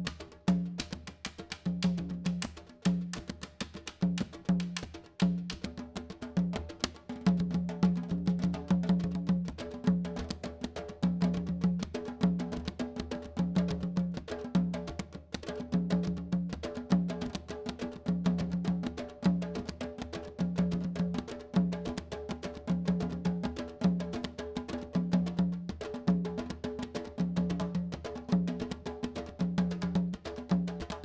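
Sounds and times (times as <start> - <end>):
drum ensemble rhythm: 0.0 - 31.0.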